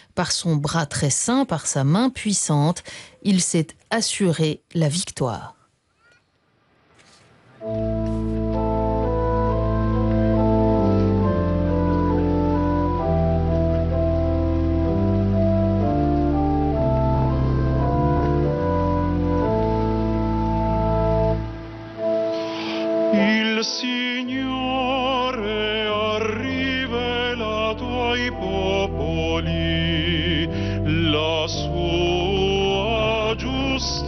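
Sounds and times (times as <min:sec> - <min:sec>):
organ playing held chords: 0:07.6 - 0:34.0
man singing with vibrato: 0:22.8 - 0:34.0.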